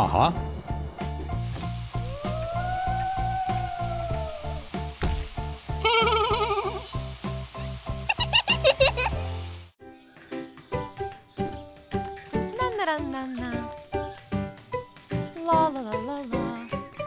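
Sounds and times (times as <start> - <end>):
cartoon ghost voices wailing: 2.0 - 4.6.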